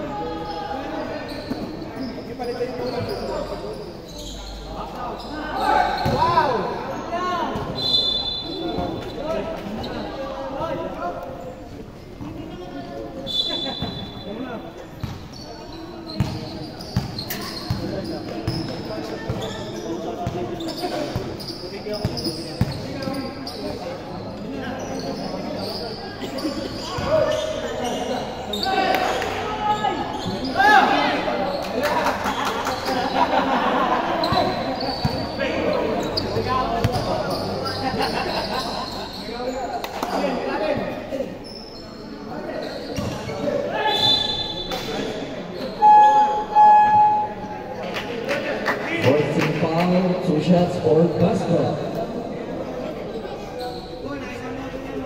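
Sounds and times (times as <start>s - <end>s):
basketball bouncing on court: 15.0s - 15.3s, 16.2s - 19.5s, 22.0s - 22.9s.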